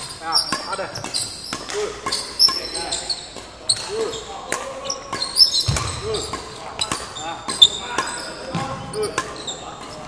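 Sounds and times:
racket hitting shuttlecocks: 0:00.0 - 0:10.0.

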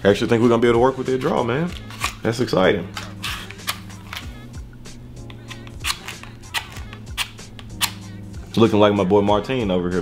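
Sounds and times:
soft background music: 0:00.0 - 0:10.0
matchbox clicks and rustles: 0:02.9 - 0:04.3, 0:05.2 - 0:08.1.

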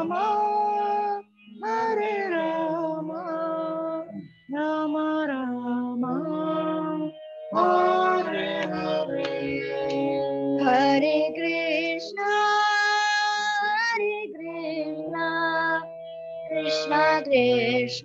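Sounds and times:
girl singing: 0:01.9 - 0:18.0
harmonium chords: 0:05.2 - 0:18.0.

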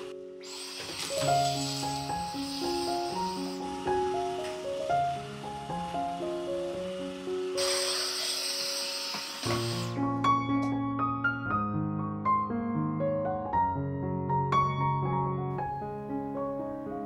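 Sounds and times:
stick vacuum whining: 0:00.0 - 0:10.0
piano-like background music: 0:00.0 - 0:17.0.

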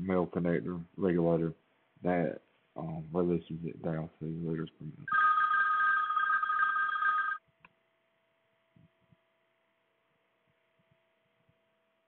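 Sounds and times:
telephone ringing: 0:05.1 - 0:07.4.

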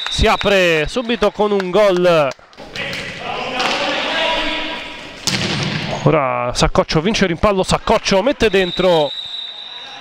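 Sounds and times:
echoing hall noise and voices: 0:00.0 - 0:10.0
ball struck: 0:05.2 - 0:05.9.

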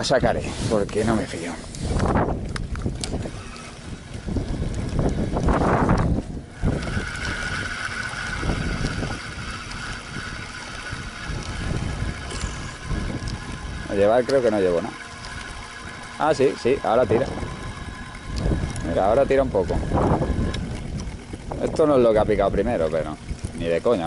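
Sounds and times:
fishing reel whining: 0:00.0 - 0:24.0
wind buffeting microphone: 0:00.0 - 0:24.0.

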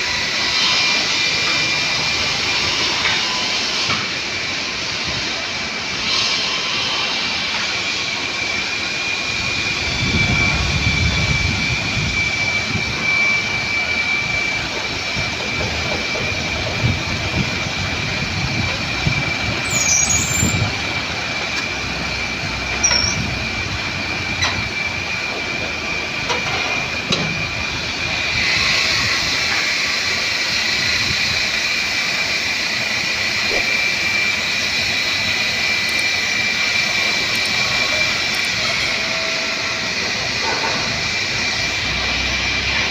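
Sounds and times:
high whine: 0:00.0 - 0:42.9
diesel engine running: 0:09.1 - 0:42.9.

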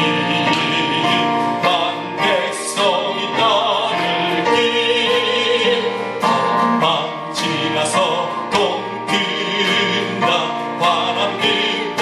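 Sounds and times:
acoustic guitar strumming: 0:00.0 - 0:12.0
man singing into a microphone: 0:00.0 - 0:12.0.

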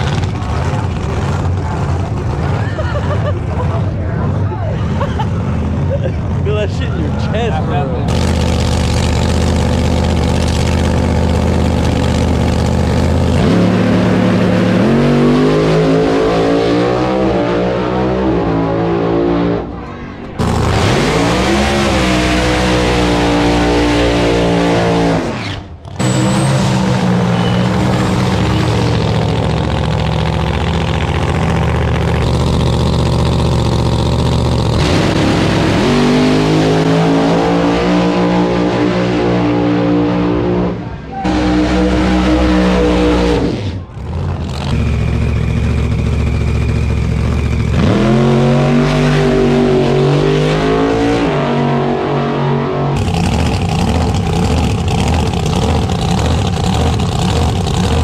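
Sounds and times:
drag car engine at full throttle: 0:00.0 - 0:58.0.

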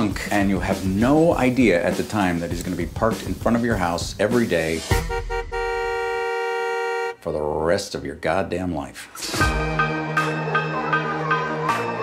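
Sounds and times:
car horn honking: 0:04.9 - 0:07.2.

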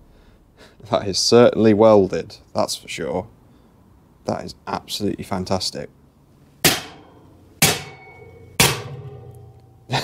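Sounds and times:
hammer blows on steel plate: 0:06.6 - 0:09.9
short metallic ring: 0:06.9 - 0:09.9.

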